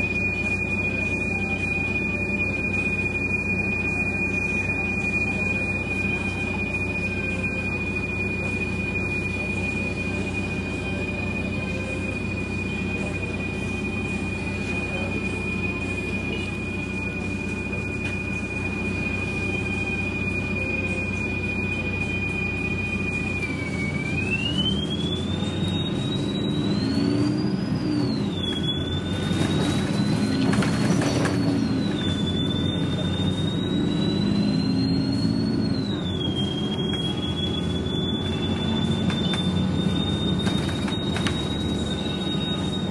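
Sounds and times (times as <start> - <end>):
bus accelerating: 0.0 - 42.9
bus engine whine: 0.0 - 42.9.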